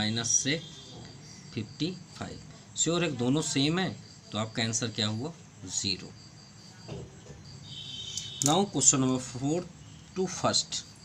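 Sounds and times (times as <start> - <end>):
high-pitched insect trill: 0.0 - 11.0
lower insect trill: 0.0 - 11.0.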